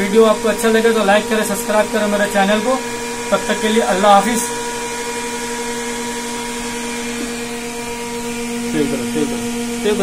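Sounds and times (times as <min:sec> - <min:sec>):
electrical hum from control panel: 0:00.0 - 0:10.0.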